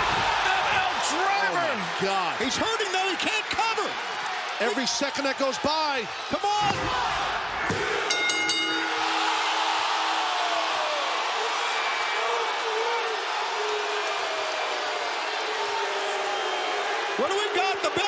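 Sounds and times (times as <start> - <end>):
arena crowd cheering: 0.0 - 18.0
ring bell struck rapidly: 8.1 - 9.2.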